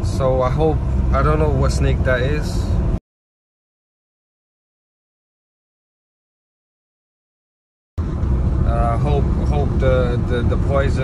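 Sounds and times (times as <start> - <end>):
man talking: 0.0 - 2.7, 8.6 - 11.0
car cabin road and engine rumble: 0.0 - 3.0, 8.0 - 11.0.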